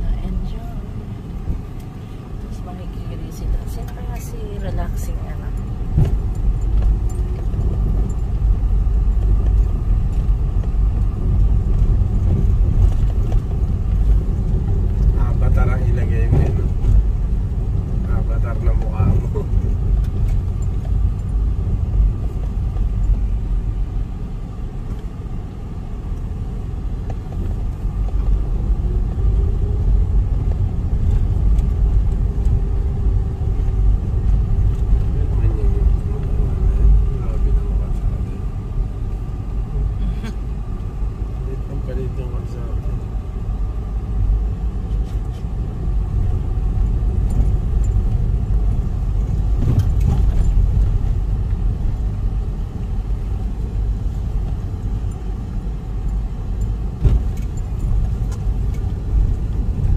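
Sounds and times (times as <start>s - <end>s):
car engine and road noise: 0.0s - 59.9s.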